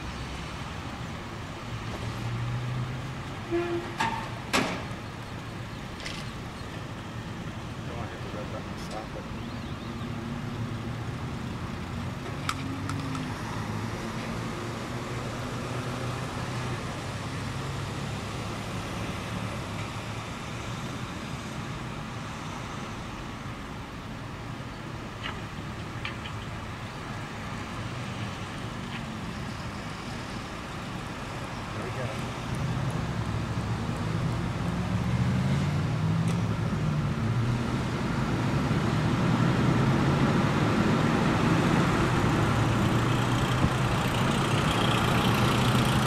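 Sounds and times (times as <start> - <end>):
road vehicle rumble: 0.0 - 46.0.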